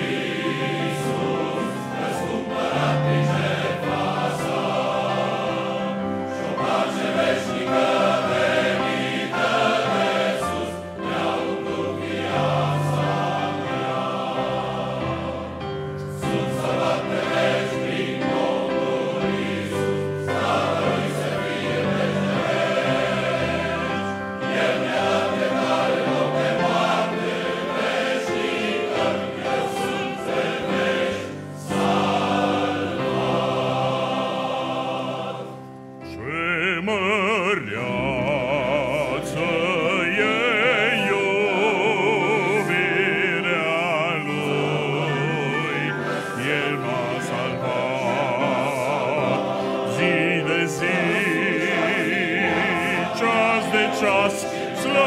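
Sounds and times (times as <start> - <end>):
men's choir singing: 0.0 - 55.0.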